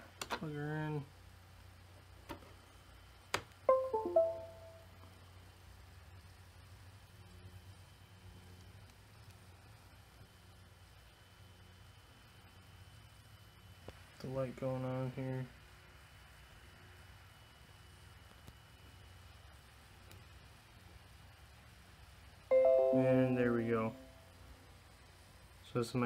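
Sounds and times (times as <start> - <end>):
device-connect chime: 3.7 - 4.9, 22.5 - 24.1
click: 20.0 - 20.2.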